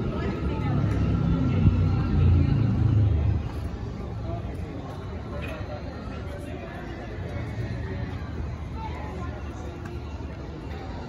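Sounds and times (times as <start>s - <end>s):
vehicle engine rumble passing: 0.0s - 4.4s
people talking: 0.0s - 11.0s.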